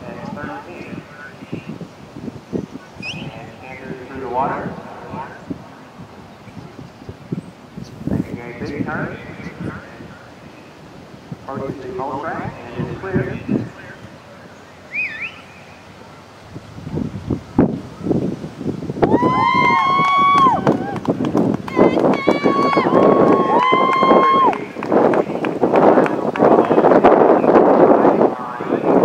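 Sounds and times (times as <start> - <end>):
people shouting long held calls: 21.7 - 24.6.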